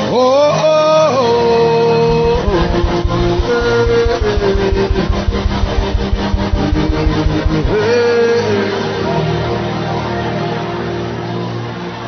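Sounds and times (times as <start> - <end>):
drum beat: 2.1 - 7.9
held keyboard chords: 2.1 - 7.9.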